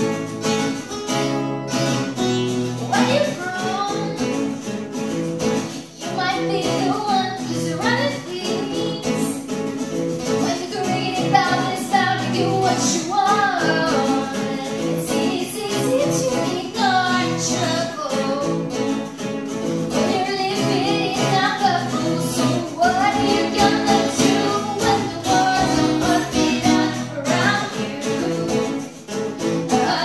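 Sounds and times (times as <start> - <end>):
acoustic guitars strumming: 0.0 - 30.0
woman singing: 2.8 - 4.8, 5.7 - 9.6, 10.2 - 30.0.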